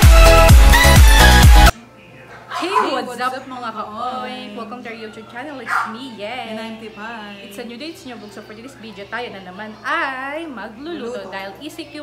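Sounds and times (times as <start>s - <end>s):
women talking animatedly: 2.5s - 12.0s.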